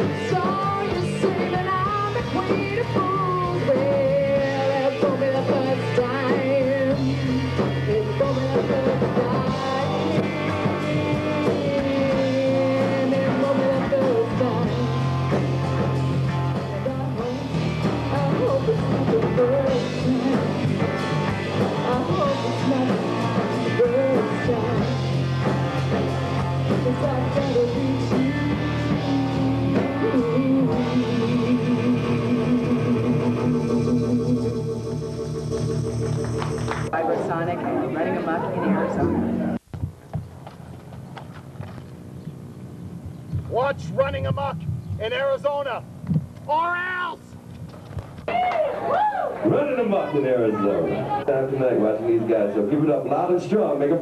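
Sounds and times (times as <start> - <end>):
woman singing: 0.0 - 15.4, 16.5 - 20.8, 21.7 - 25.1, 26.6 - 34.6
drum kit: 0.0 - 37.0
electric guitars: 0.0 - 39.6.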